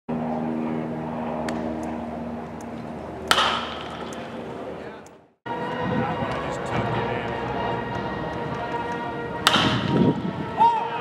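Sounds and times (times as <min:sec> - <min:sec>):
steady mechanical hum: 0:00.1 - 0:05.3
metal bat hitting ball: 0:03.3 - 0:04.4, 0:09.4 - 0:10.0.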